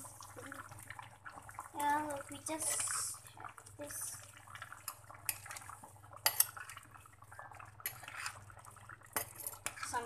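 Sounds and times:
soft stirring of thick curry: 0:00.0 - 0:10.0
metal spoon clinking on clay pot: 0:09.2 - 0:09.8.

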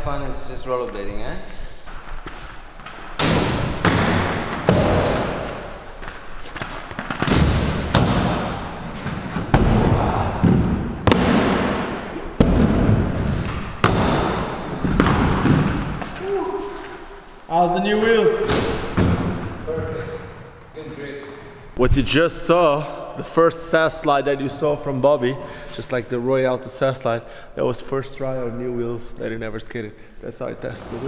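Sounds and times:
skates sliding along ledges: 0:01.5 - 0:21.4
skate landing thuds: 0:02.8 - 0:16.4
skate wheels rolling on concrete: 0:04.2 - 0:11.2, 0:12.6 - 0:18.4.

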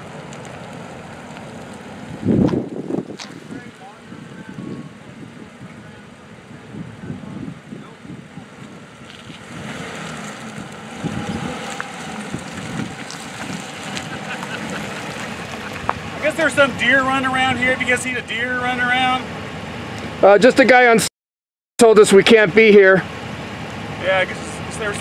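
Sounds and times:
tyres on wet pavement: 0:00.0 - 0:20.4, 0:22.3 - 0:25.0
car engine: 0:00.0 - 0:21.0, 0:22.1 - 0:25.0
wind buffeting microphone: 0:01.5 - 0:17.9.

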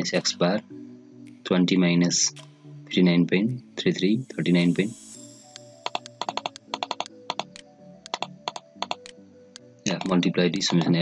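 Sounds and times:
faint sustained tones: 0:04.2 - 0:05.9
rapid computer mouse clicks: 0:05.5 - 0:09.2, 0:09.9 - 0:11.0.

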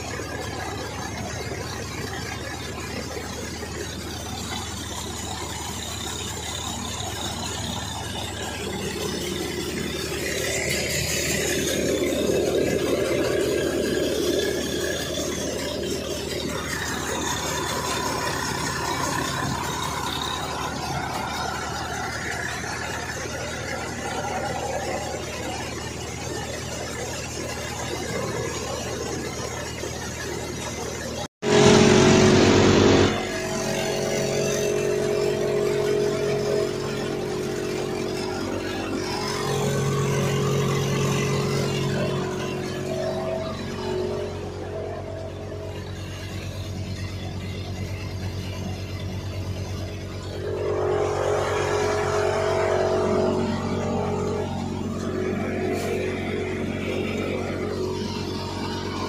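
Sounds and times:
tractor-driven thresher running: 0:00.0 - 0:59.0.

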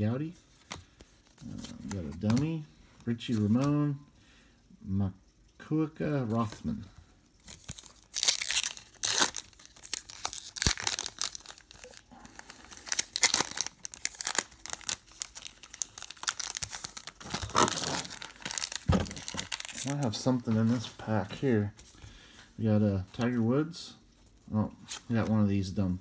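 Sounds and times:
foil wrapper crinkling and tearing: 0:07.4 - 0:20.5.

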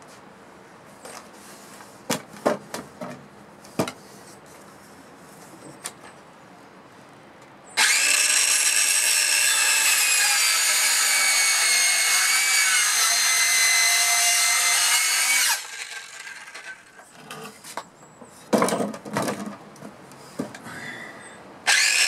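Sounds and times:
circular saw cutting wood: 0:07.8 - 0:17.0, 0:21.7 - 0:22.0.

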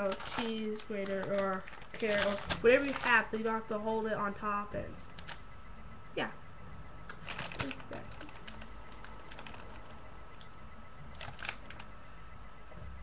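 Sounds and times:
plastic packaging clicking and crackling: 0:00.0 - 0:03.5, 0:05.2 - 0:05.4, 0:07.1 - 0:10.0, 0:11.1 - 0:11.9.

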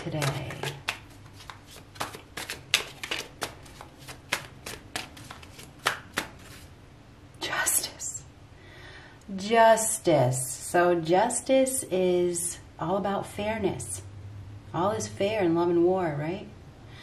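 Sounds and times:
cards being shuffled: 0:00.0 - 0:06.7
cards sliding swish: 0:01.1 - 0:06.7.

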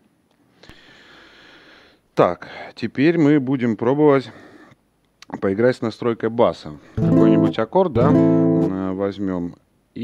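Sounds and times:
soft breathy hiss: 0:00.4 - 0:03.0, 0:04.0 - 0:05.3.

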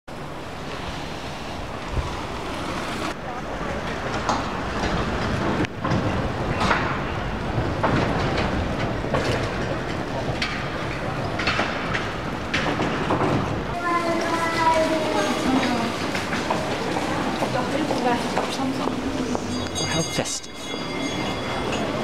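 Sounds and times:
street noise rush: 0:00.1 - 0:22.0.

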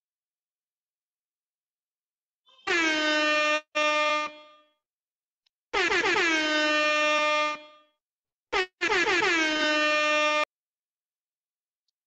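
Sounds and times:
air horn blasts: 0:02.4 - 0:04.8, 0:05.7 - 0:10.5.

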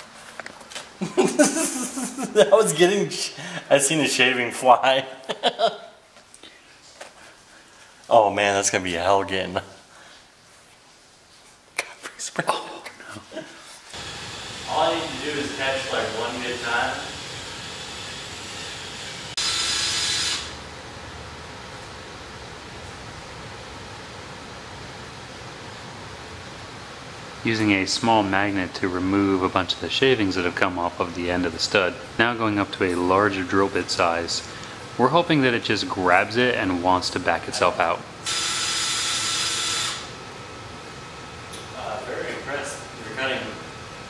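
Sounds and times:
steady background hiss: 0:00.0 - 0:44.0
power drill whining: 0:16.5 - 0:20.6, 0:38.2 - 0:40.1.

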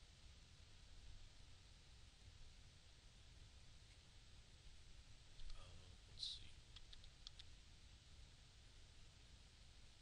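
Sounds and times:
computer mouse clicks: 0:06.7 - 0:07.5.

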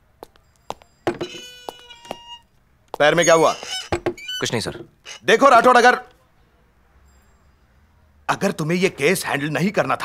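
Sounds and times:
door knocks: 0:01.1 - 0:02.2, 0:03.4 - 0:04.2
door hinges creaking: 0:01.1 - 0:02.4, 0:03.0 - 0:05.9.

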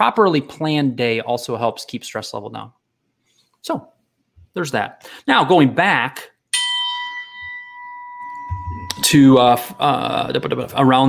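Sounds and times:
bell-like chime ringing: 0:06.6 - 0:10.9.

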